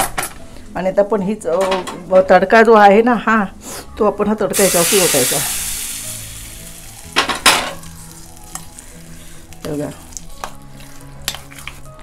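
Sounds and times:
oil sizzling faintly: 4.5s - 11.0s.

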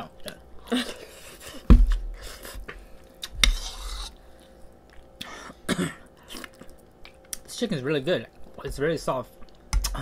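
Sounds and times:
person coughing: 5.3s - 6.1s.

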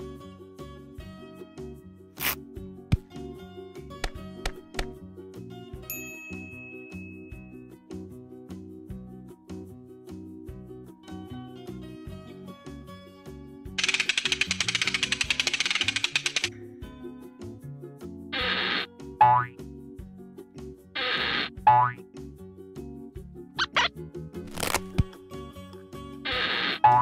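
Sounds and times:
cartoon background music: 0.0s - 5.9s, 6.7s - 27.0s
fast rattling effect: 13.8s - 16.5s.

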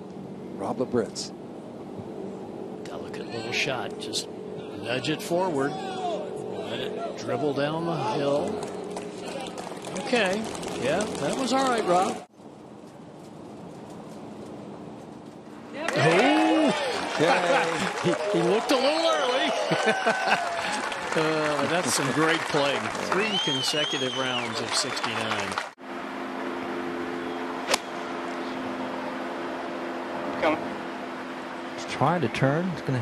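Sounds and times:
steady low hum: 0.0s - 11.4s
quiet outdoor ambience: 0.0s - 33.0s
golf club striking ball: 27.6s - 28.0s.

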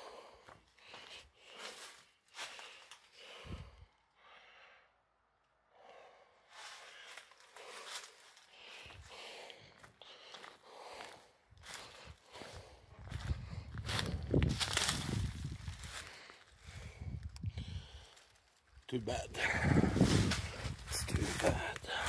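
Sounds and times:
footsteps in dry leaves: 0.8s - 3.1s, 6.5s - 16.9s, 17.9s - 22.0s.

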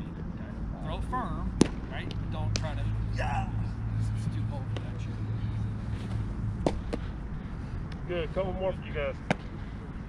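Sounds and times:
ball smacking into catcher's mitt: 1.6s - 2.7s, 9.3s - 9.5s.

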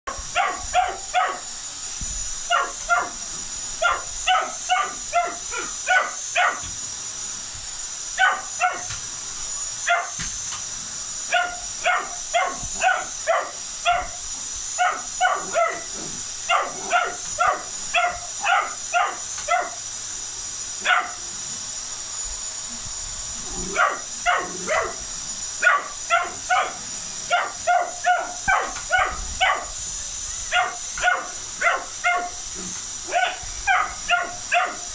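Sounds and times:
puppy barking: 0.1s - 1.5s, 2.5s - 3.2s, 3.8s - 6.7s, 8.2s - 9.0s, 9.8s - 10.2s, 11.3s - 14.2s, 14.8s - 19.8s, 20.8s - 21.2s, 23.7s - 25.0s, 25.6s - 29.7s, 30.5s - 32.4s, 33.1s - 34.9s
vacuum cleaner motor whine: 0.1s - 34.9s.

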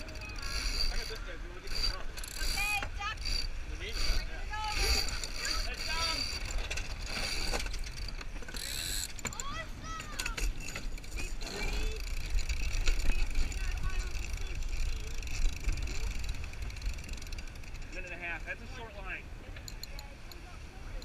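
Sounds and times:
winch ratcheting: 0.0s - 18.9s, 19.5s - 21.0s
sail flapping: 0.0s - 19.6s
lines squeaking through blocks: 10.2s - 13.6s.

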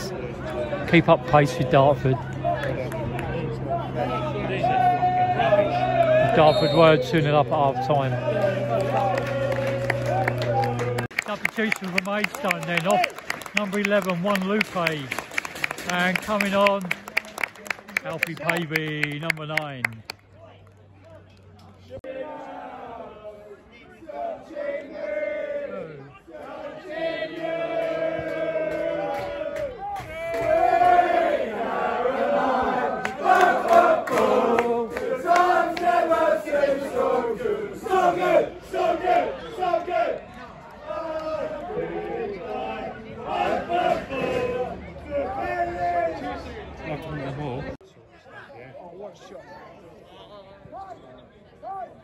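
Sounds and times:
crowd singing a chant: 22.0s - 45.9s.

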